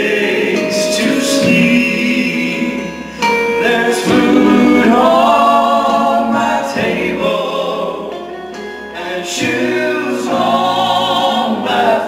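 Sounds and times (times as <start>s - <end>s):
men singing gospel song: 0.0s - 12.0s.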